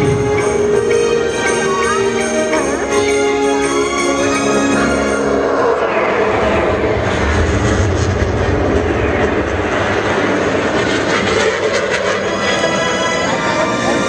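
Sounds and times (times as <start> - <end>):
orchestral music: 0.0 - 8.0, 12.2 - 14.0
jet aircraft flying past: 0.0 - 14.0.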